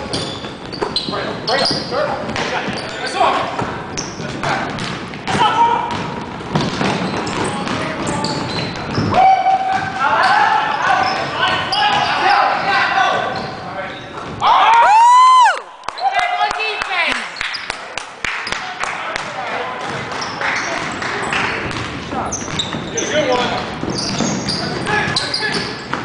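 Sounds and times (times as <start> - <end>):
basketball bouncing on hardwood: 21.6 - 22.9.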